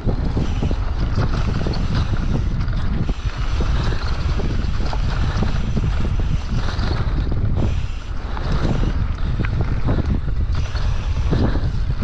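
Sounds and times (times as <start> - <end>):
bike clicks and rattles: 0.0 - 12.0
wind rumble on microphone: 0.0 - 12.0.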